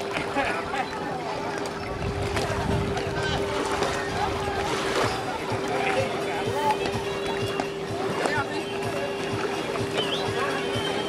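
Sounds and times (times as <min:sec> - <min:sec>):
voices and chatter: 0:00.0 - 0:11.0.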